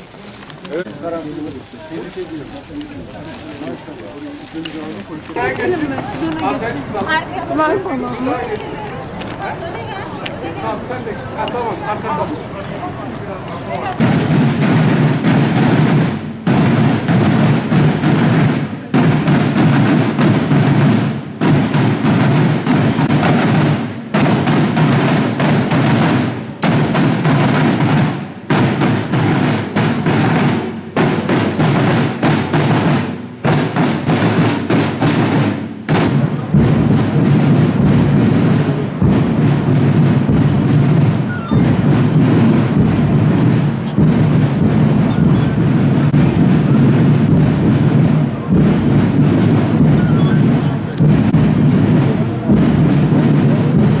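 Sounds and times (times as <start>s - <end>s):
snare and bass drums cadence: 13.1s - 54.0s.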